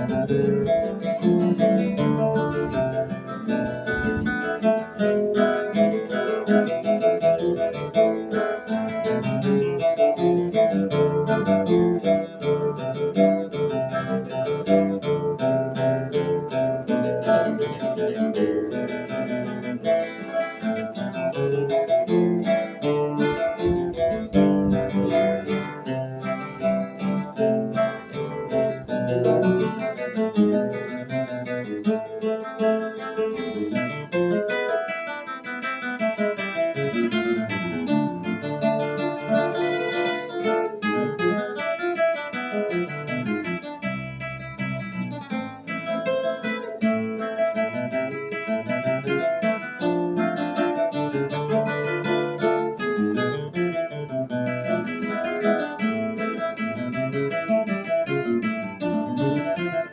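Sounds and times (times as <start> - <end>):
classical guitar duet: 0.0 - 59.9.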